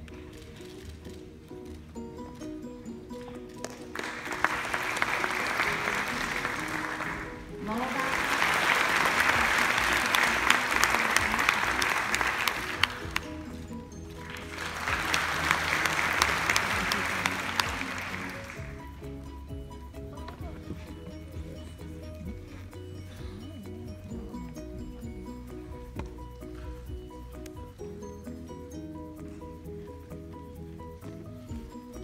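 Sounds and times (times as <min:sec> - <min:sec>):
quiet background music: 0:00.0 - 0:32.0
audience applause: 0:03.6 - 0:20.6.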